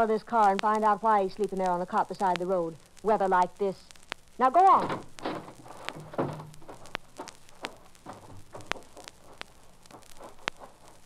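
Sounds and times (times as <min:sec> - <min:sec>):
low hum and hiss: 0:00.0 - 0:11.0
record surface crackle and clicks: 0:00.0 - 0:11.0.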